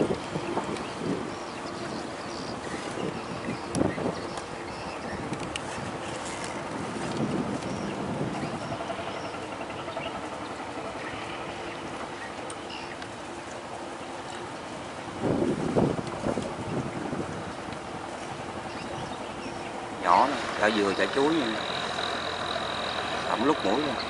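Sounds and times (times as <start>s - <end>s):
wind on microphone: 0.0s - 12.2s, 14.6s - 21.3s
boat engine humming: 0.0s - 24.0s
rushing water: 0.0s - 24.0s.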